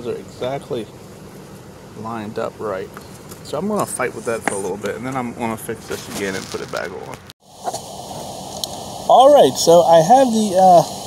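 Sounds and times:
room tone hiss: 0:03.5 - 0:11.0.

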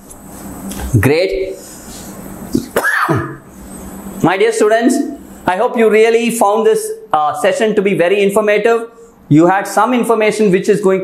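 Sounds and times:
man clearing throat: 0:02.5 - 0:03.5.

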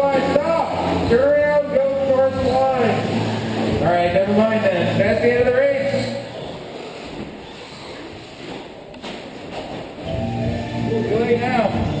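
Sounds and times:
murmur of voices in hall: 0:00.0 - 0:08.8.

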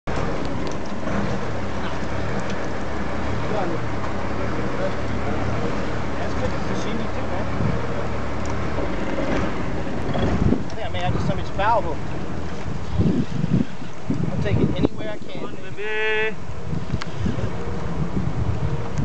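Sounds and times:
boat engine drone: 0:00.0 - 0:19.0
water noise: 0:00.0 - 0:19.0
wind: 0:00.0 - 0:19.0.

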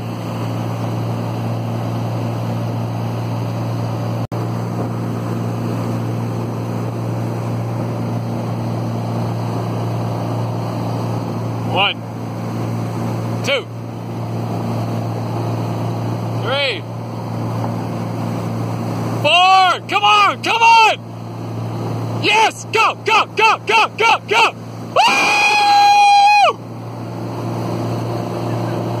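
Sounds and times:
rush of wash: 0:00.0 - 0:29.0
towboat engine droning: 0:00.0 - 0:29.0
water noise: 0:00.0 - 0:29.0
wind: 0:00.0 - 0:29.0
person cheering yell: 0:22.2 - 0:26.6
person shouting a word: 0:22.7 - 0:24.6.

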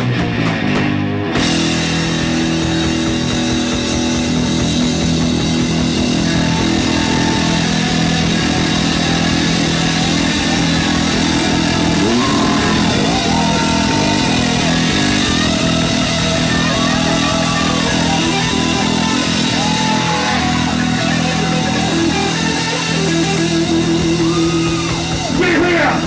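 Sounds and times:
heavy rock band playing: 0:00.0 - 0:26.0
sliding bending guitar notes: 0:00.0 - 0:26.0.

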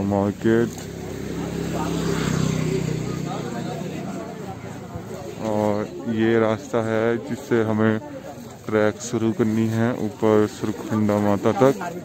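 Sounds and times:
crowd murmur: 0:00.0 - 0:12.0.

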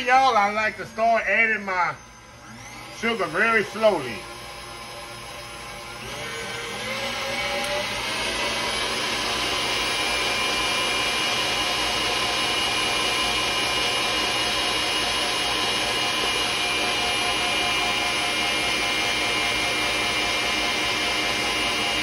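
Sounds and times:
stand mixer motor whine: 0:00.0 - 0:22.0.

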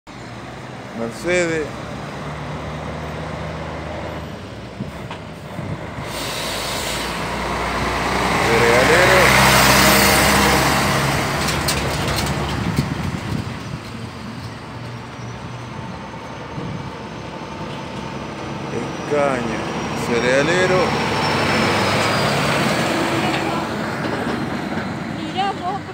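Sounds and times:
diesel truck engine: 0:00.1 - 0:25.9
tyre and road noise: 0:00.1 - 0:25.9.

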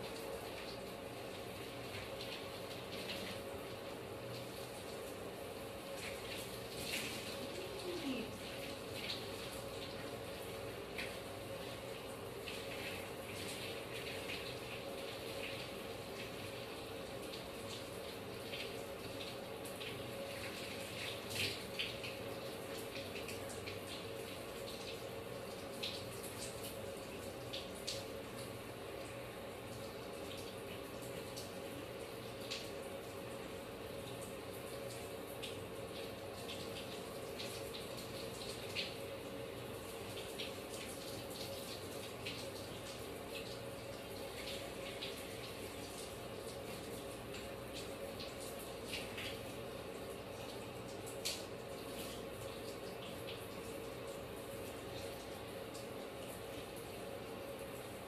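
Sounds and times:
water running from bathtub tap: 0:00.0 - 0:58.0.

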